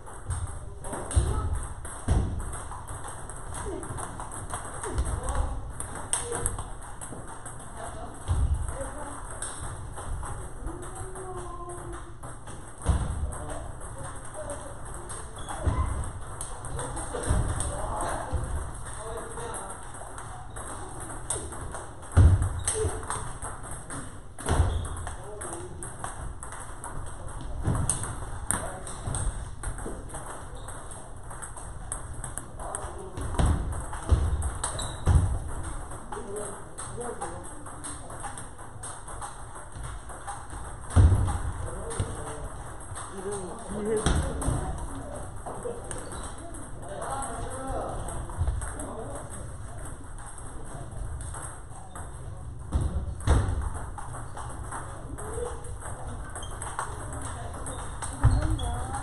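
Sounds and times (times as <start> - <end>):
ping-pong balls clicking: 0.0 - 59.0
people talking: 0.3 - 1.7, 4.8 - 6.6, 10.3 - 12.2, 12.8 - 21.8, 24.5 - 26.1, 32.4 - 35.2, 41.6 - 51.0, 54.7 - 59.0.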